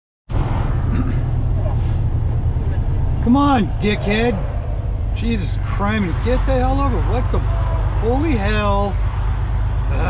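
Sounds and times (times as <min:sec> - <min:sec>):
truck engine and road noise: 0:00.3 - 0:10.0.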